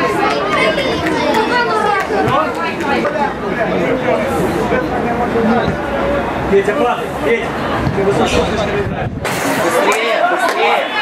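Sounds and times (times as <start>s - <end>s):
men talking and shouting: 0.0s - 11.0s.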